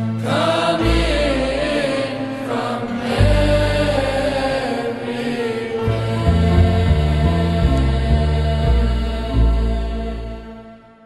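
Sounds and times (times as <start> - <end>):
music with low deep chanting: 0.0 - 11.0.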